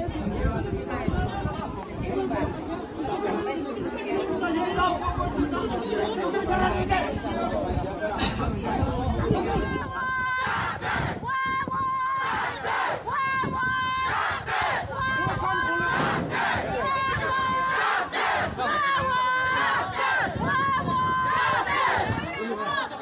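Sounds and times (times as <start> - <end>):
crowd shouting slogans: 9.3 - 23.0.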